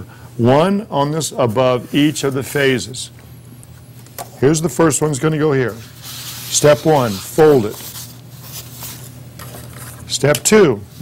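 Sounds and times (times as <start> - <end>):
steady low hum: 0.0 - 11.0
paper rustling: 5.7 - 10.1.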